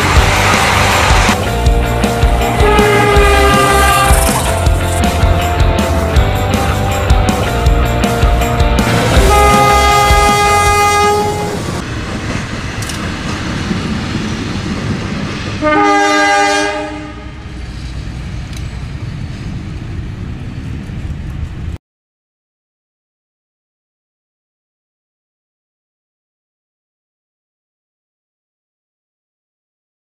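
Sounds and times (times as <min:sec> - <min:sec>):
locomotive horn chord: 0:00.0 - 0:06.9, 0:08.5 - 0:11.8, 0:15.6 - 0:17.5
diesel locomotive engine rumble: 0:00.0 - 0:21.8.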